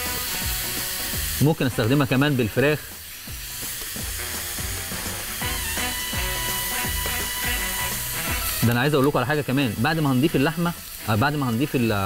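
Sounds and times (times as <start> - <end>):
background music: 0.0 - 12.0
food sizzling in oil: 0.0 - 12.0.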